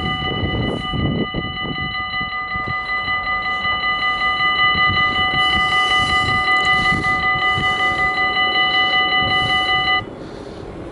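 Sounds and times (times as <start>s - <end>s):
low rumble: 0.0s - 10.1s
level crossing warning bell: 0.0s - 10.2s.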